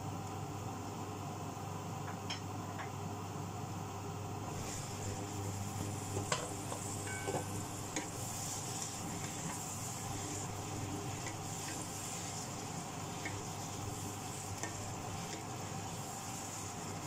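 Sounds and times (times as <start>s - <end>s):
steady low hum: 3.2s - 17.0s
food sizzling in a pan: 4.4s - 17.0s.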